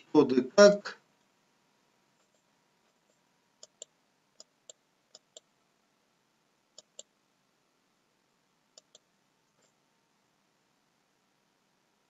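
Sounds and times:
mouse button clicks: 8.8s - 9.0s.

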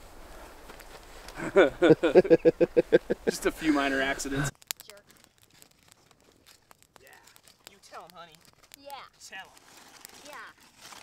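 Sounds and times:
campfire crackling and popping: 0.0s - 11.0s.

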